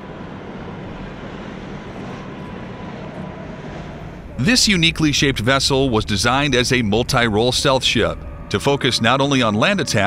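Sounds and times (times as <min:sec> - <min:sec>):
distant engine rumble: 0:00.0 - 0:10.0
faint steady hum: 0:00.0 - 0:10.0.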